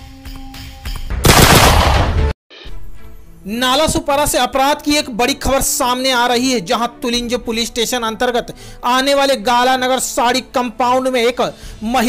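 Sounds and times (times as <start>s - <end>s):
gunshot sound effect: 1.2s - 2.3s.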